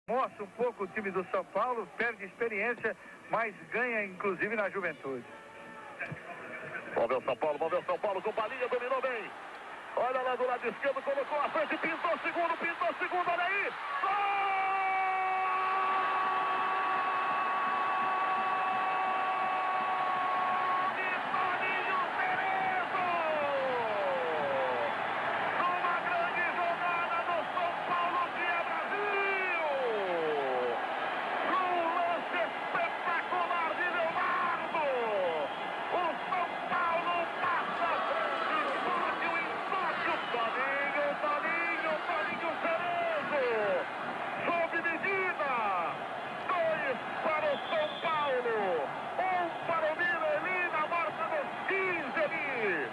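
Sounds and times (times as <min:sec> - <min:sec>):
stadium crowd noise: 0:00.1 - 0:52.9
commentator shouting goal: 0:10.0 - 0:30.8, 0:31.4 - 0:52.9.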